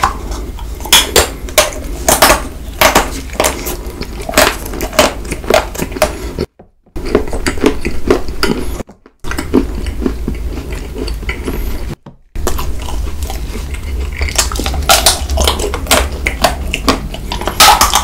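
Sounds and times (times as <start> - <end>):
chocolate crunching while chewed: 0.0 - 18.0.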